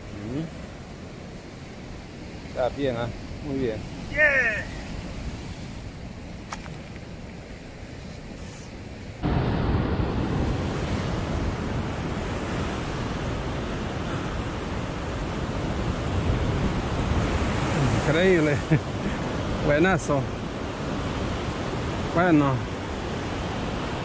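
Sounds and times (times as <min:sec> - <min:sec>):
surf breaking on rocks: 0:00.0 - 0:20.3
wind on microphone: 0:00.0 - 0:24.0.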